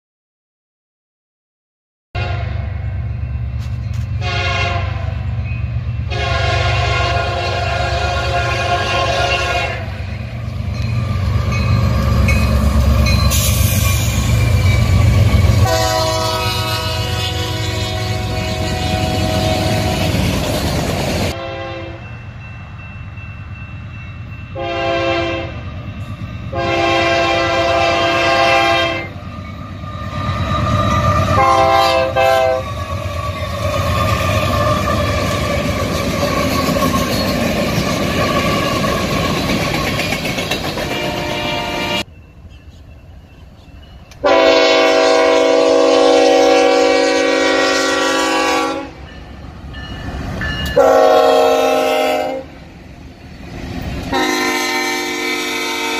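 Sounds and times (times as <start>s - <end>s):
train air horn chord: 2.2s - 2.7s, 4.2s - 5.2s, 6.1s - 10.0s, 15.6s - 20.1s, 21.3s - 22.1s, 24.6s - 25.6s, 26.5s - 29.2s, 31.3s - 32.7s, 40.9s - 42.1s, 44.2s - 49.0s, 50.8s - 52.6s, 54.1s - 55.9s
diesel locomotive engine rumble: 2.2s - 55.9s
train cars rolling by: 2.4s - 55.9s.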